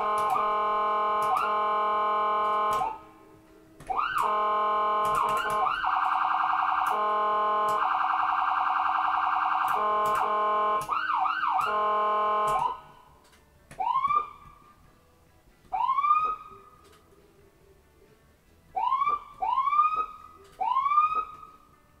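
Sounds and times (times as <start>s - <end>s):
steady siren tone: 0.0s - 3.1s, 3.8s - 13.1s, 13.8s - 14.7s, 15.7s - 16.8s, 18.8s - 21.6s
siren whoops: 3.9s - 12.9s, 13.8s - 14.4s, 15.8s - 16.6s, 18.8s - 21.6s.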